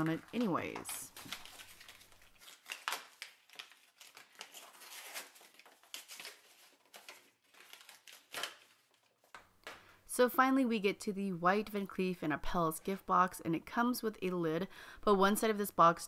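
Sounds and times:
wrapping paper tearing: 0.0 - 9.4.

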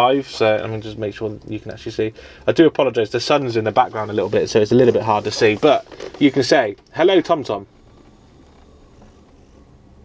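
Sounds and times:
low rumble inside lorry cab: 0.0 - 10.0.

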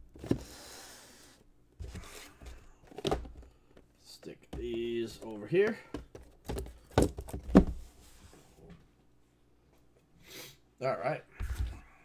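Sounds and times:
cardboard boxes thunking on table: 6.0 - 7.8.

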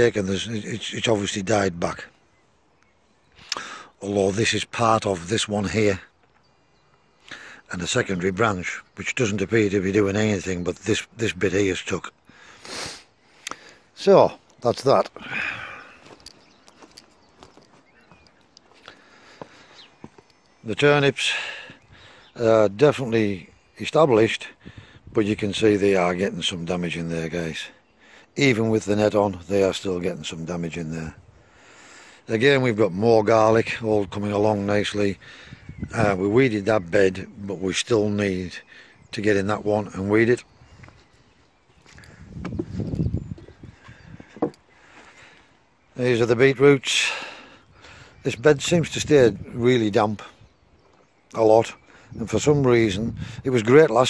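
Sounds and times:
footsteps on wood chips: 15.9 - 20.3.

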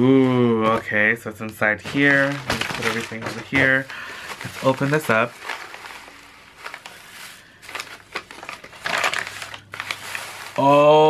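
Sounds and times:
packing paper crinkling: 0.2 - 11.0.

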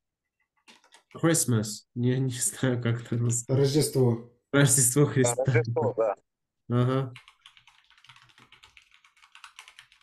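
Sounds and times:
fast typing on keyboard: 0.5 - 1.2, 7.1 - 10.0.

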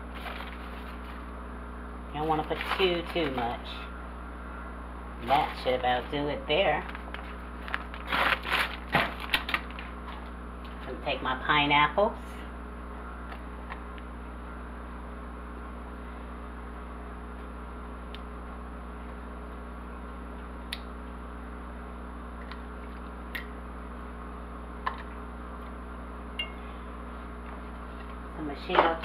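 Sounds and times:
low background hum: 0.0 - 29.0.

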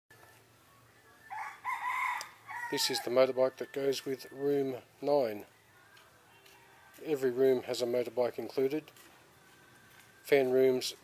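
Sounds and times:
rooster crowing: 1.3 - 3.3.

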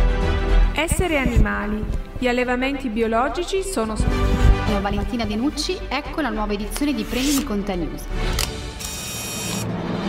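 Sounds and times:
low background music: 0.0 - 10.0
mechanical whirring sound effect: 8.8 - 9.7.

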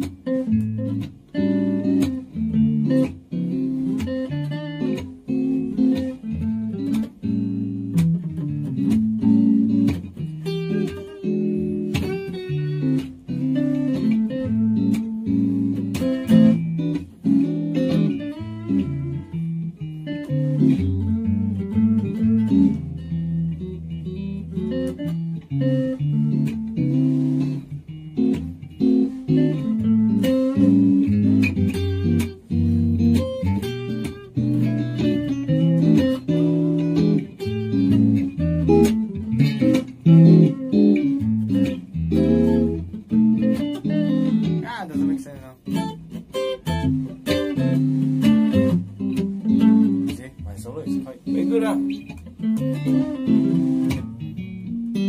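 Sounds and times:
electric guitar lead lines: 0.0 - 55.0
guitar chords: 0.0 - 55.0.

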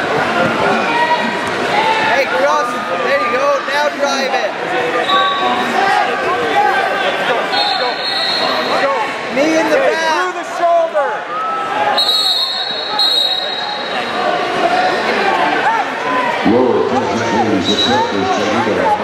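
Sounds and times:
overlapping shouts and voices: 0.0 - 19.0.

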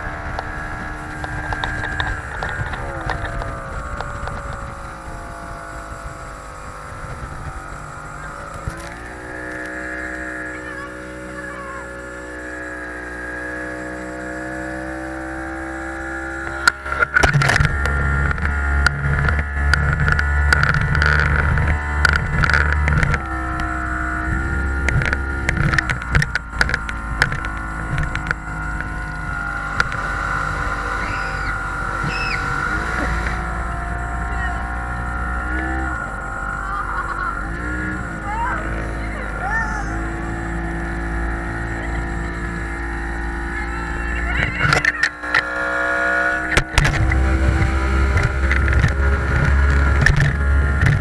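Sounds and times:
speedboat motor whine: 0.0 - 51.0.

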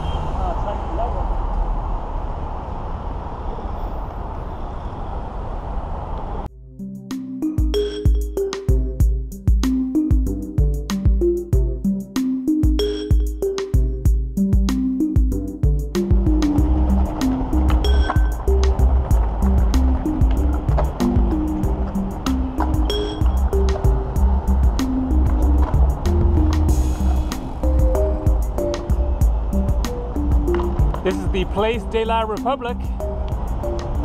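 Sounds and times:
music with steady beat: 6.5 - 34.0.

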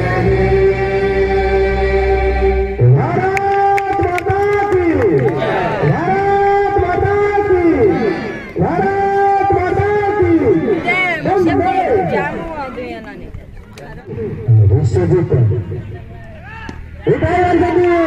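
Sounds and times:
droning chant over deep bass: 0.0 - 12.4
echoing melody over loudspeaker: 0.0 - 12.4.

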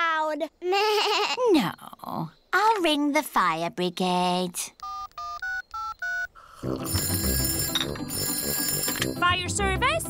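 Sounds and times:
phone keypad beeps: 4.8 - 6.3, 6.9 - 9.3
telephone bell ringing: 4.8 - 9.5.

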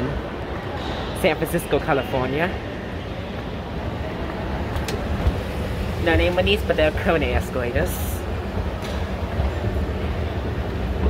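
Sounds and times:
escalator mechanical rumble: 3.4 - 11.0.

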